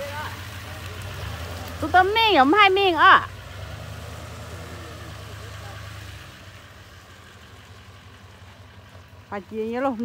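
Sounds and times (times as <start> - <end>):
truck engine driving away: 0.0 - 10.0.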